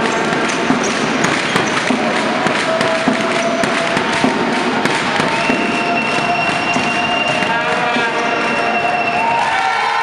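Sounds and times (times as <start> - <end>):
crowd clapping and banging: 0.0 - 10.0
crowd voices: 0.0 - 10.0.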